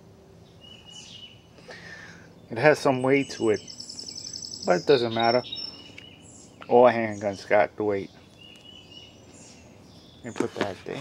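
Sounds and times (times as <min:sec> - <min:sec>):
faint high-pitched chirp: 0:02.4 - 0:10.3.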